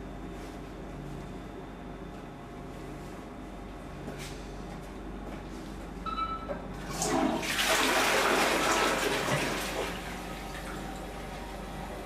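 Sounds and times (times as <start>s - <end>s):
toilet flushing: 6.8s - 12.0s.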